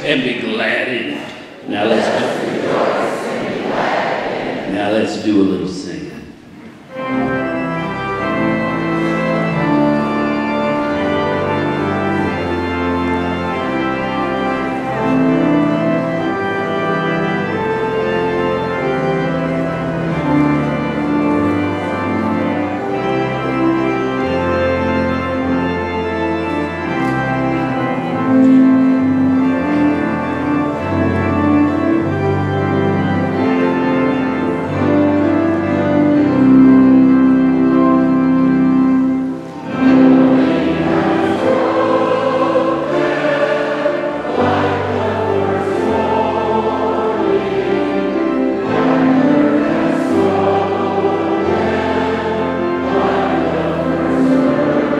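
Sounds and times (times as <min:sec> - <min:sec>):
congregation singing a hymn: 0:00.0 - 0:54.9
keyboard playing sustained chords: 0:00.0 - 0:54.9.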